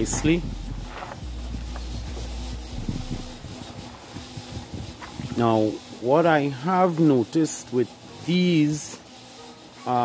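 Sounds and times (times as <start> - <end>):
camera microphone rubbing rumble: 0.0 - 5.6.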